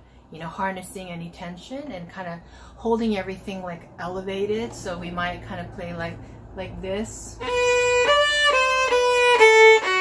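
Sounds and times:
solo violin melody: 7.4s - 10.0s.

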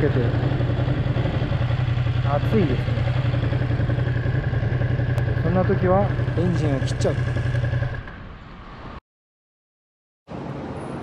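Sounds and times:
motorcycle engine idling: 0.0s - 8.2s.

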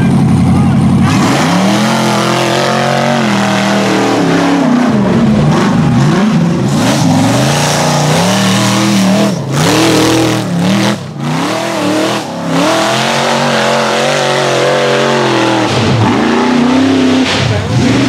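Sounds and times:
engine revving hard under load: 0.9s - 18.0s.

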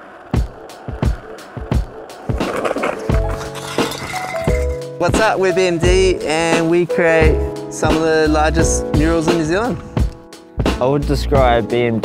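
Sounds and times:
skateboard clacks: 0.0s - 4.6s
skateboard wheels rolling on pavement: 0.0s - 6.8s.

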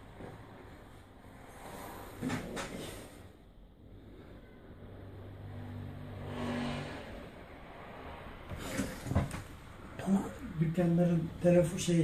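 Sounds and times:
vehicle passing rush: 0.0s - 12.0s.

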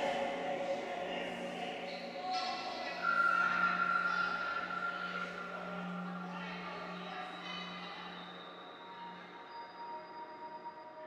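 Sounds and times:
steady low electronic hum: 0.0s - 9.3s
high sustained tone: 0.0s - 11.0s.

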